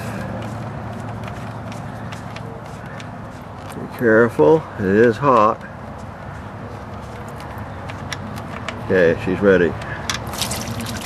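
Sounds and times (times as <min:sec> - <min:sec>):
oil trickling: 0:10.2 - 0:11.0.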